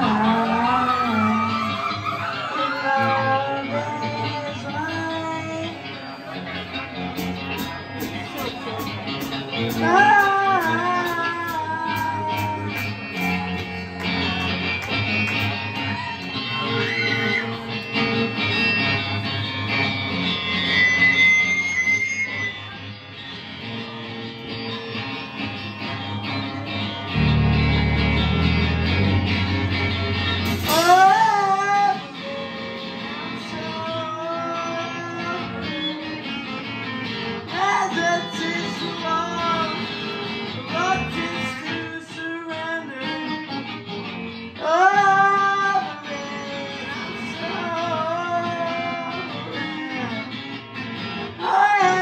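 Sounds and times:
bass guitar: 0.0s - 52.0s
drums: 0.0s - 52.0s
electric guitar: 0.0s - 52.0s.

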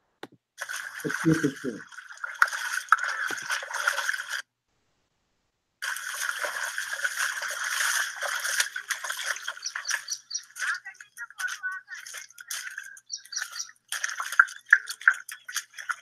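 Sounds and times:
footsteps splashing through water: 0.6s - 4.4s, 5.8s - 16.0s.

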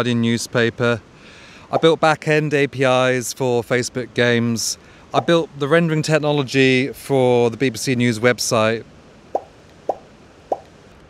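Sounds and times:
rising pop sound effects: 9.4s - 10.7s.

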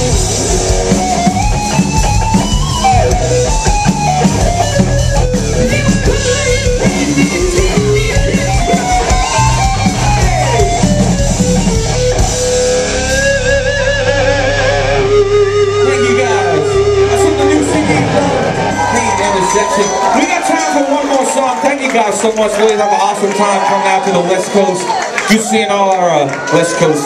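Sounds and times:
distorted electric guitar melody: 0.0s - 20.2s
live hard rock band: 0.0s - 25.2s.

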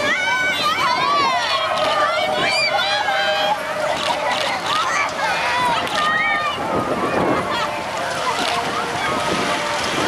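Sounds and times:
girls shouting and cheering: 0.0s - 9.7s.

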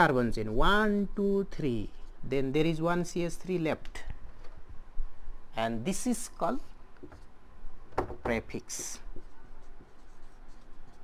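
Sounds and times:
marker scratching on whiteboard: 8.8s - 11.0s.

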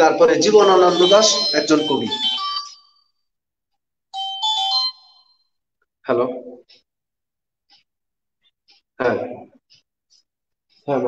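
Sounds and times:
phone ringtone chime: 0.2s - 3.1s, 4.2s - 5.5s.

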